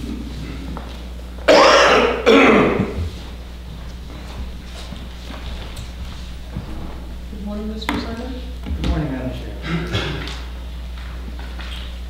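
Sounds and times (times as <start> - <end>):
low room hum: 0.0 - 12.0
person coughing: 1.5 - 3.1, 9.6 - 10.4.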